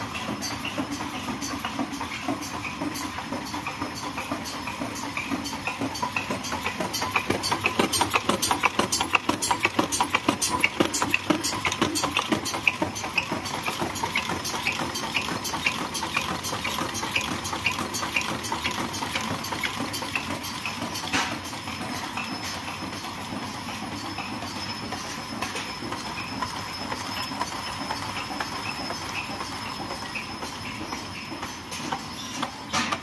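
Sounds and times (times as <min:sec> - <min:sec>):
machine clacking: 0:00.0 - 0:33.0
steady machine hum: 0:00.0 - 0:33.0.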